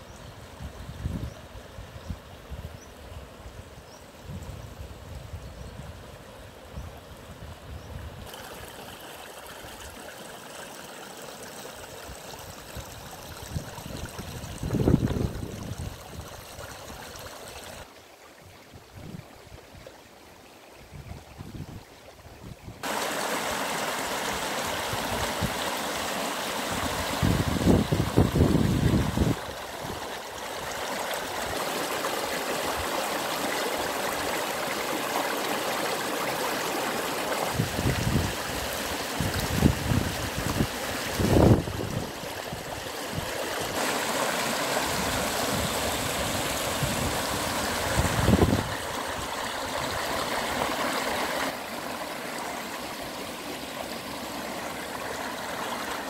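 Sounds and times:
stream running over stones: 0:04.3 - 0:56.0.

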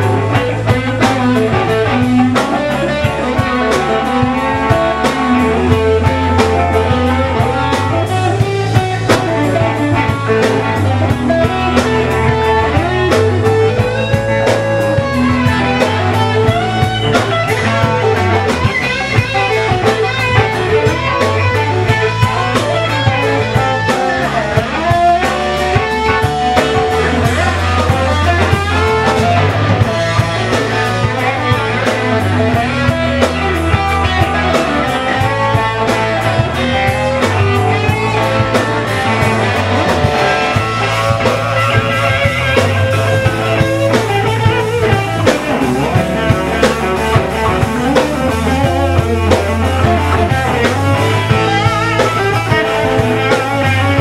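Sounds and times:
bass guitar: 0:00.0 - 0:54.0
drum kit: 0:00.0 - 0:54.0
electric guitar lead: 0:00.0 - 0:54.0.

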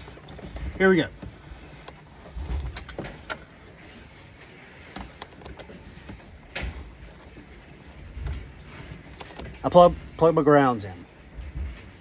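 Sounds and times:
wire connectors clicking and knocking: 0:00.0 - 0:03.5.

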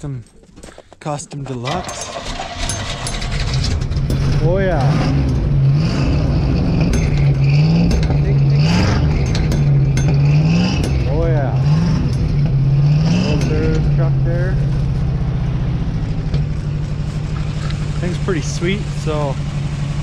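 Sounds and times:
truck engine revving and idling: 0:01.7 - 0:20.0.

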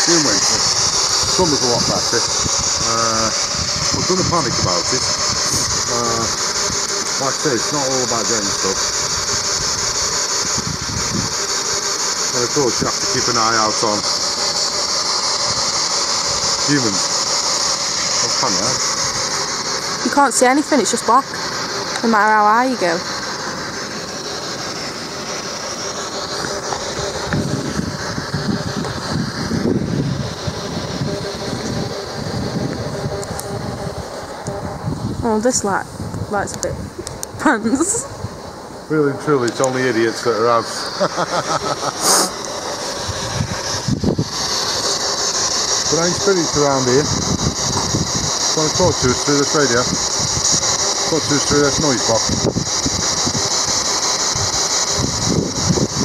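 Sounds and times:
steady hiss: 0:00.0 - 0:56.0
passing train rumbling: 0:12.3 - 0:41.1, 0:41.8 - 0:56.0
low rumble: 0:22.0 - 0:39.4.

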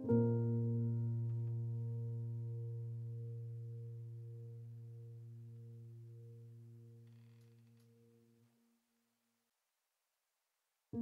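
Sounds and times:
held low keyboard chord: 0:00.0 - 0:08.2.

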